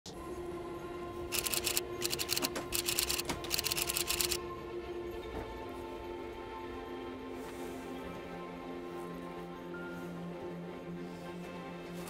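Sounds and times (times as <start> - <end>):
keyboard typing clicks: 1.4 - 4.4.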